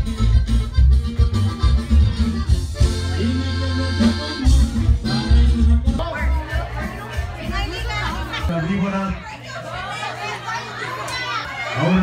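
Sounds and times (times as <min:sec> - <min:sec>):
crowd of voices talking: 0:00.0 - 0:12.0.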